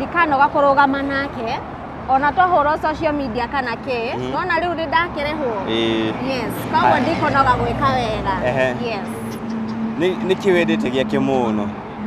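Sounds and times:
person saying yes: 4.2s - 4.4s.

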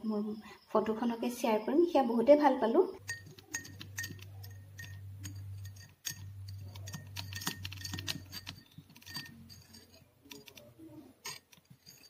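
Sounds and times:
woman speaking: 0.0s - 3.0s
low steady hum: 0.0s - 12.0s
spoon clinking against glass: 3.0s - 12.0s.

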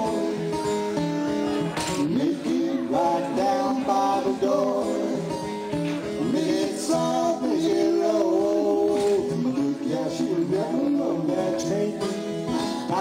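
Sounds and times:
acoustic guitar playing blues: 0.0s - 13.0s.

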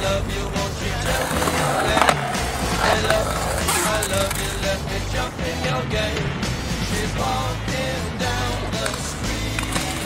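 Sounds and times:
background music: 0.0s - 10.0s
skateboard wheels rolling on concrete: 0.0s - 10.0s
skateboard knocking: 1.0s - 4.5s.

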